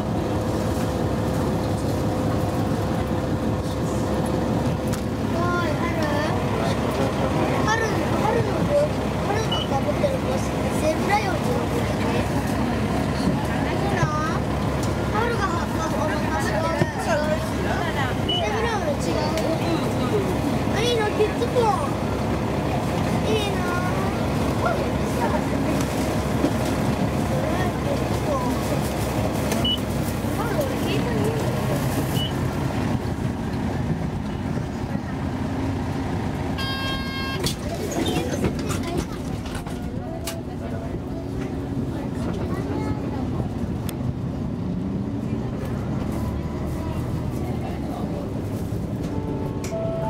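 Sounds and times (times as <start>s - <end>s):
bus engine and road rumble: 0.0s - 50.0s
murmur of passengers' voices: 0.0s - 50.0s
short buzzer tone: 36.6s - 37.4s, 49.2s - 50.0s.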